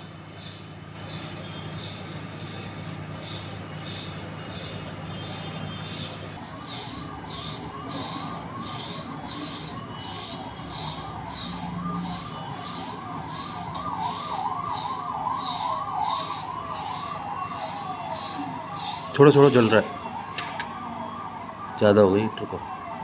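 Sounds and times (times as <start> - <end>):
electronic siren wailing: 0.0 - 23.0.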